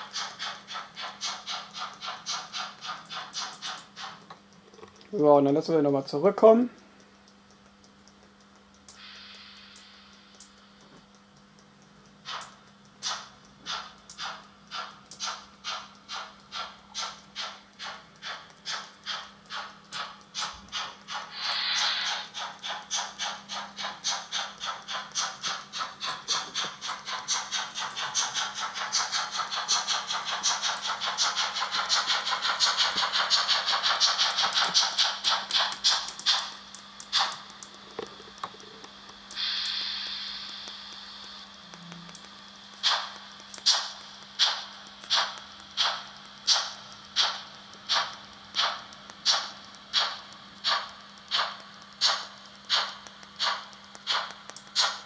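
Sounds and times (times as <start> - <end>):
hiss of steam: 0.0 - 4.1, 9.0 - 10.2, 13.0 - 37.6, 39.3 - 55.0
steam locomotive chuffs from speaker: 0.0 - 4.3, 12.2 - 37.7, 38.9 - 55.0.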